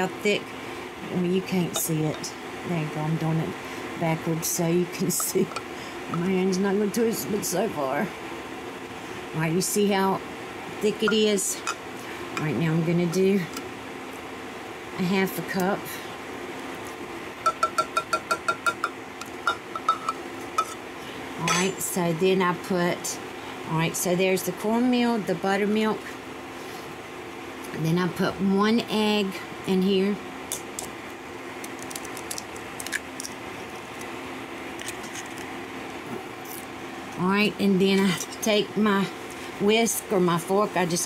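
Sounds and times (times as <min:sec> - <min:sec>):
steady low hum: 0:00.0 - 0:41.0
cup clinking against glass bowl: 0:17.5 - 0:20.8.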